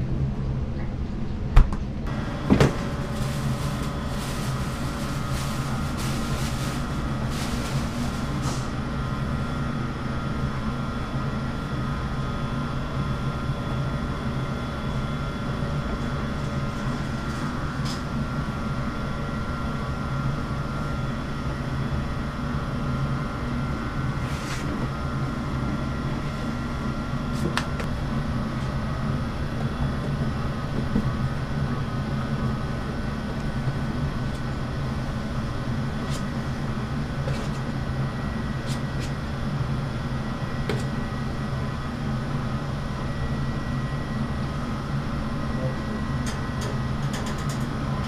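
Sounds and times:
kitchen equipment hum: 1.5s - 48.0s.

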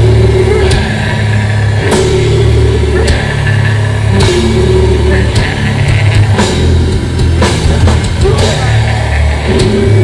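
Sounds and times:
distorted guitar and bass droning: 0.0s - 10.0s.

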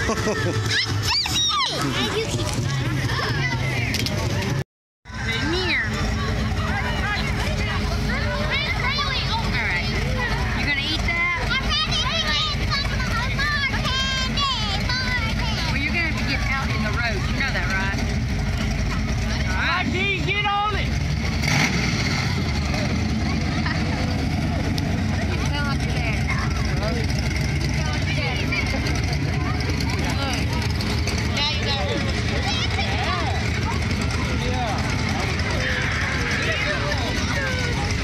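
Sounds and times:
children's voices: 0.0s - 19.8s, 21.2s - 38.0s
crowd chatter: 0.0s - 38.0s
vehicle engines rumbling: 0.0s - 38.0s.

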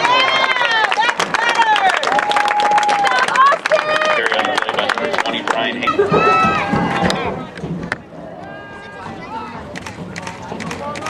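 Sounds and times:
voices shouting: 5.9s - 7.5s.

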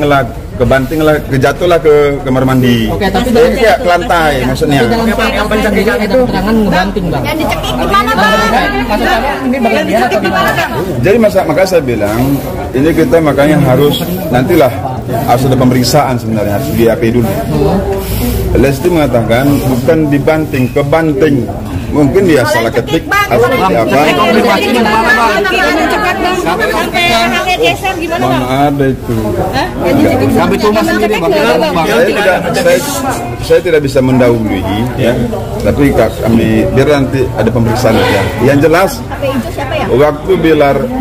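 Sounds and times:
people talking: 0.0s - 41.0s.

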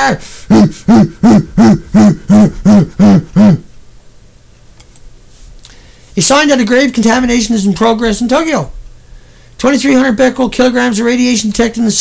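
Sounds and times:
voice repeating hooting syllable: 0.0s - 3.8s.

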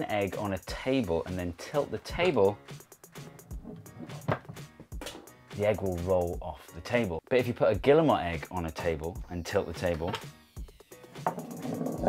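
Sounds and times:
quiet background music: 0.0s - 12.0s
egg rolling on tabletop: 11.2s - 12.0s.

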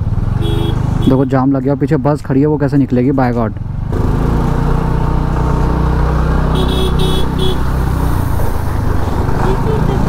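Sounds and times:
vehicle horn beeping: 0.4s - 1.4s, 6.5s - 7.7s
scooter engine running: 3.9s - 10.0s.

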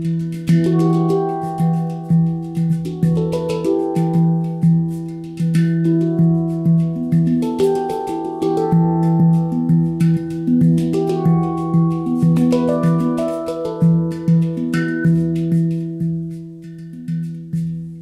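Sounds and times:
handpan notes ringing: 0.0s - 18.0s.

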